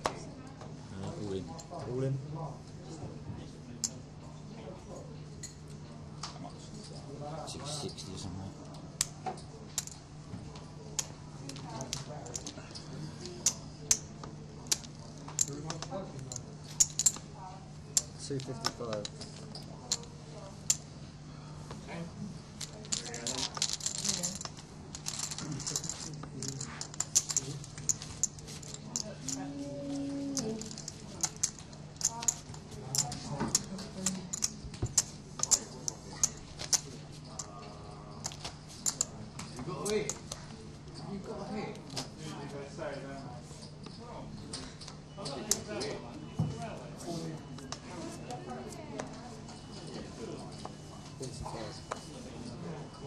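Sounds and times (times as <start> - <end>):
poker chips clacking: 14.7 - 17.3, 22.6 - 37.5, 38.2 - 39.1
murmured talk: 28.6 - 38.3.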